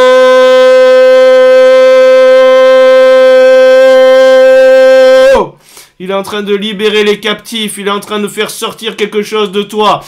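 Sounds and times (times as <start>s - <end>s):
shofar blast: 0.0s - 5.5s.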